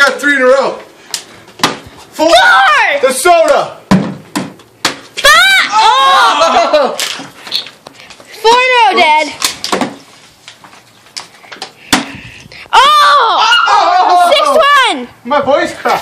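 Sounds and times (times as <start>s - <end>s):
young player crying out excitedly: 5.2s - 7.0s.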